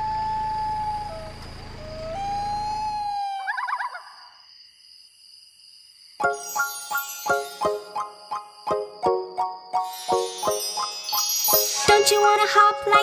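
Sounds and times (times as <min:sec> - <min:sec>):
low hum: 0:00.0 - 0:03.4
siren-like electronic tone: 0:00.0 - 0:03.5.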